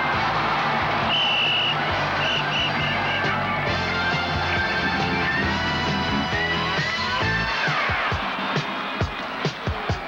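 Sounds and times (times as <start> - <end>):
background music: 0.0 - 10.0
stadium crowd noise: 0.0 - 10.0.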